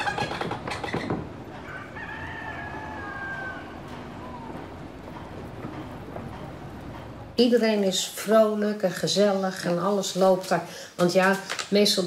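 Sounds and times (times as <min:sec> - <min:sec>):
steady low background noise: 0:01.2 - 0:11.0
fowl crowing: 0:01.5 - 0:04.8.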